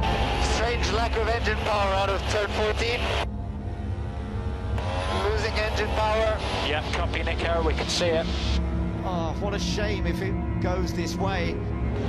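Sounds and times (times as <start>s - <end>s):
racing car engine droning: 0.0s - 12.0s
radio voice: 5.2s - 8.6s.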